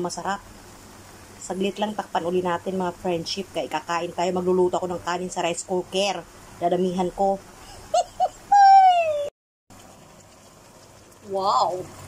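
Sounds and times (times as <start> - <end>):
woman's drawn-out falling voice: 8.4 - 9.3
pan simmering with soft bubbling: 9.7 - 12.0.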